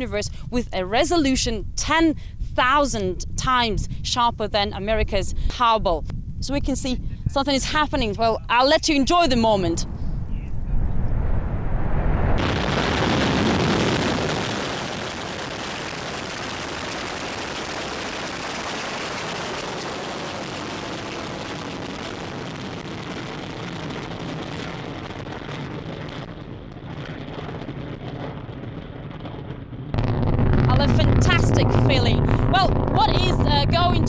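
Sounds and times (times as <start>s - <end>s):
distant rocket engine rumble: 8.9s - 34.0s.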